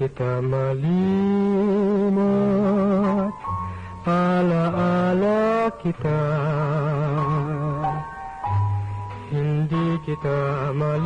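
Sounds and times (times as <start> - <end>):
person singing love song: 0.0 - 11.0.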